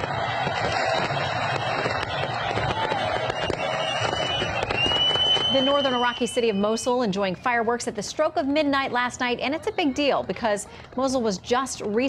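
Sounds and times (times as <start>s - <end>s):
dense noisy din: 0.0s - 7.9s
fireworks popping and crackling: 0.0s - 8.2s.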